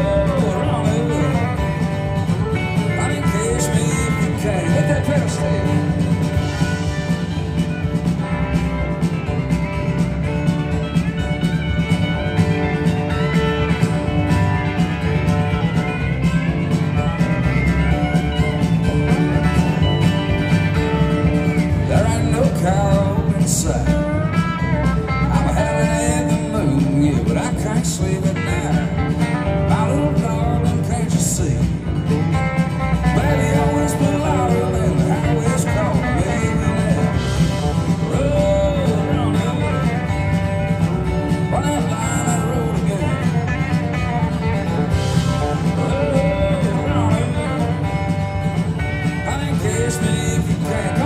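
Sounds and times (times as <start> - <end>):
country band playing live: 0.0 - 51.0
guitar lead lines bending: 0.0 - 51.0.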